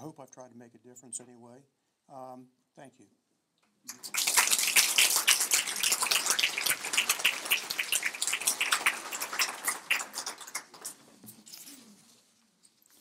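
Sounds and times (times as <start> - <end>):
audience applauding: 3.9 - 11.2.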